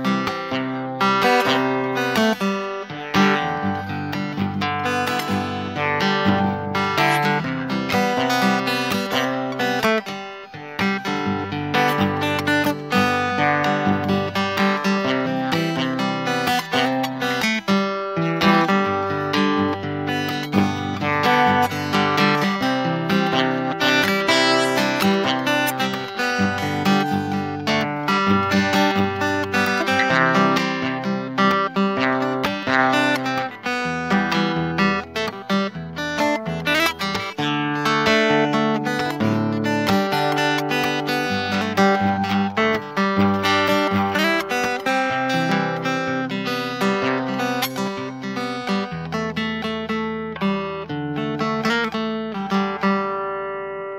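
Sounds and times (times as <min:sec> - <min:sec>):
fingerstyle acoustic guitar: 0:00.0 - 0:53.9.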